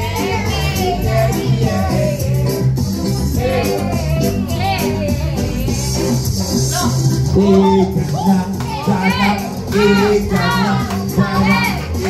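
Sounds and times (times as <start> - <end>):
karaoke backing track: 0.0 - 12.0.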